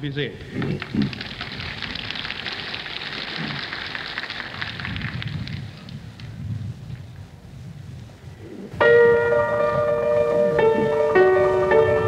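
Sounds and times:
audience applauding: 0:00.5 - 0:06.0.

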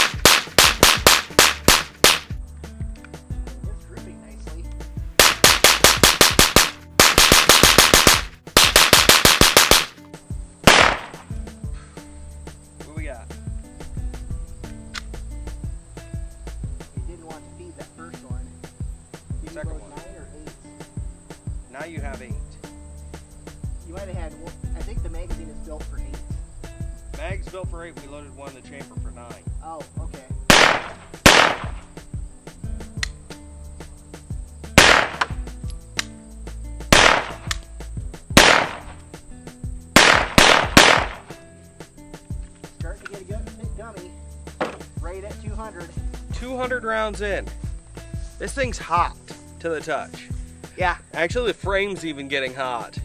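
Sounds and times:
pistol shots: 0:00.0 - 0:02.3, 0:05.2 - 0:09.9, 0:10.6 - 0:11.3, 0:30.5 - 0:31.9, 0:34.8 - 0:35.4, 0:36.9 - 0:37.6, 0:38.4 - 0:39.0, 0:40.0 - 0:41.3.

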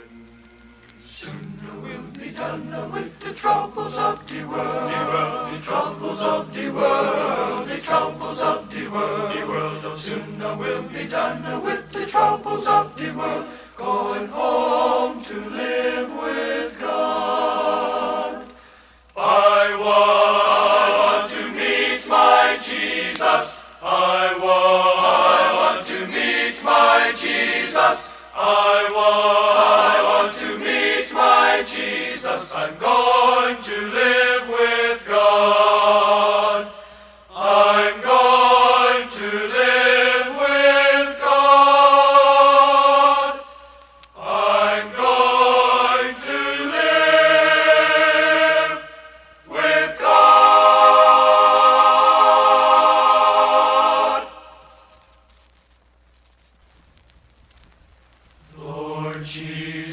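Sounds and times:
male choir singing in harmony: 0:01.1 - 0:18.6, 0:19.2 - 0:43.6, 0:44.2 - 0:54.8, 0:58.5 - 0:59.9.

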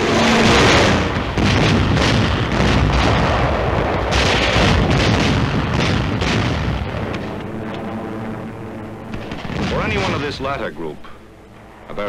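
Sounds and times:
gunfire: 0:00.0 - 0:07.5, 0:09.1 - 0:10.6
artillery explosions: 0:00.0 - 0:11.2
steady hum: 0:00.0 - 0:12.0.

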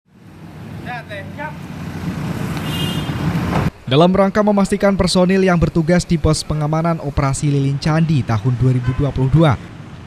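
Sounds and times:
rumble of passing traffic: 0:00.1 - 0:10.0
vehicle engines running: 0:00.1 - 0:10.0.

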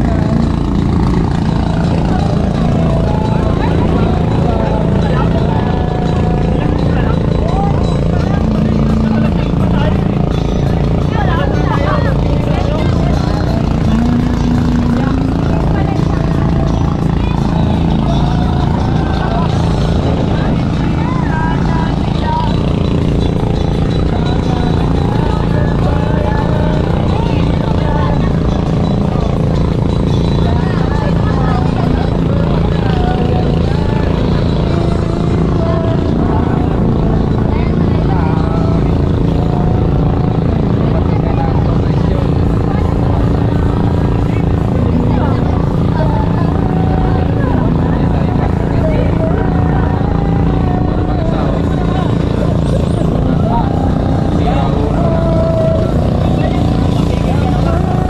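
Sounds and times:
boat engine running: 0:00.0 - 0:58.0
people chattering: 0:00.0 - 0:58.0.

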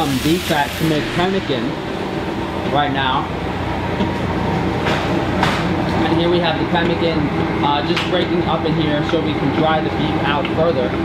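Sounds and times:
stand mixer running: 0:00.0 - 0:11.0.

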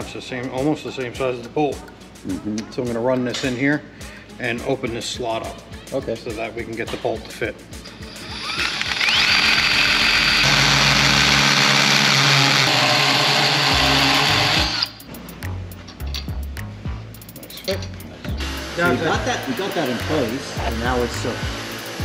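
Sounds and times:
power tool whining: 0:08.0 - 0:15.0, 0:18.4 - 0:22.0.

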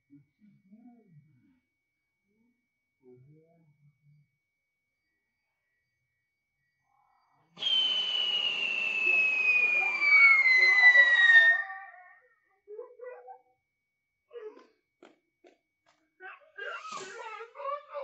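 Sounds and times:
hiss: 0:07.6 - 0:11.2, 0:16.8 - 0:17.2
firecracker whistle falling in pitch: 0:07.6 - 0:11.8.

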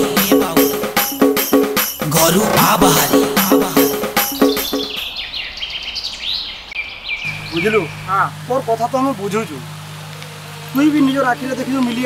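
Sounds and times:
faint outdoor hiss: 0:01.9 - 0:12.0
small birds chirping: 0:02.2 - 0:12.0.

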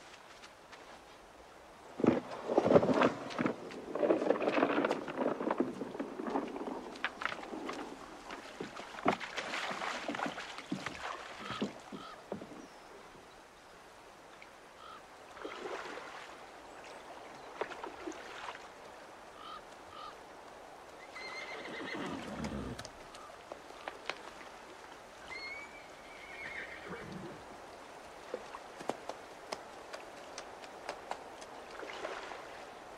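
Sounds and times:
faint water splashes: 0:00.0 - 0:32.9
horse whinnying: 0:21.1 - 0:22.8, 0:25.3 - 0:27.4.

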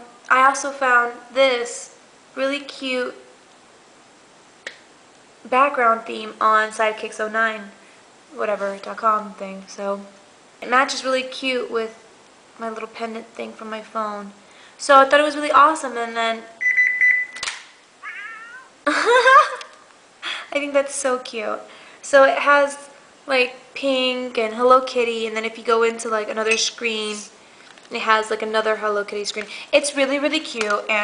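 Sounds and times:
high electronic beep: 0:16.6 - 0:17.4
phone screen click: 0:16.6 - 0:17.7
short sharp click: 0:17.4 - 0:17.7
high-pitched cat-like call: 0:18.0 - 0:18.8.

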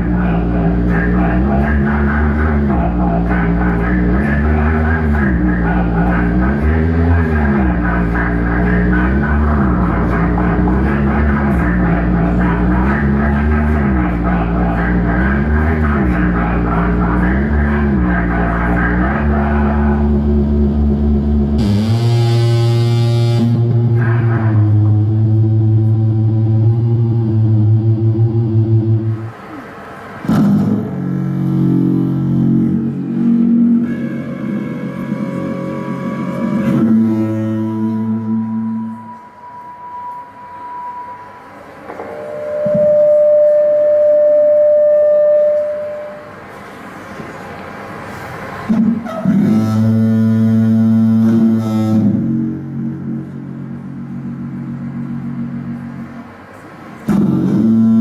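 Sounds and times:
low droning pitched tones: 0:00.0 - 0:58.0
loud higher held note: 0:15.5 - 0:46.5.

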